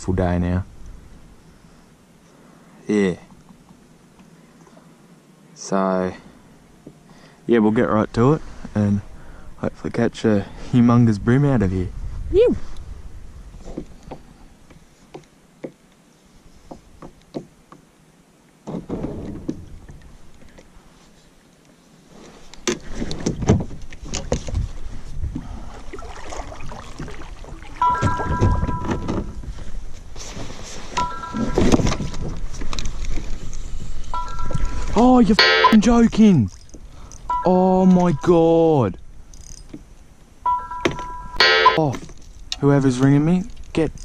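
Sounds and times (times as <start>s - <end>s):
paddle strokes in water: 22.0s - 28.6s
mobile phone ringing: 27.8s - 29.1s, 31.0s - 31.8s, 34.2s - 35.9s, 37.3s - 38.3s, 40.5s - 41.8s.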